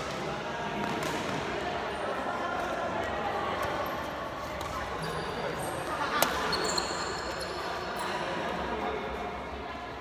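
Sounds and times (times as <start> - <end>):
shoes squeaking on court floor: 4.7 - 8.3.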